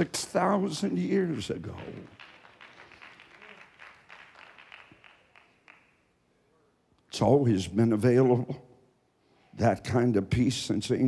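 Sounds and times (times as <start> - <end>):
congregation clapping: 0.6 - 6.1.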